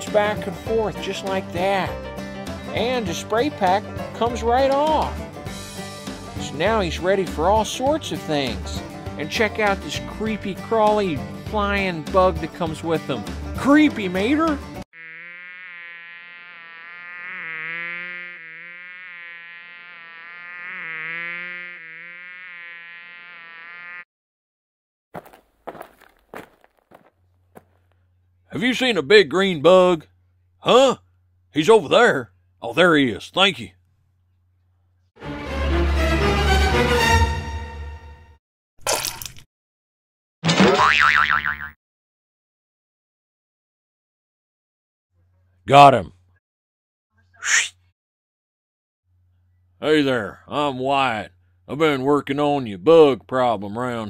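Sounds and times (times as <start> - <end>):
buzzing insect sound effect: 14.9 - 24.1
springy cartoon boing: 40.5 - 41.8
cartoon whoosh: 47.4 - 47.8.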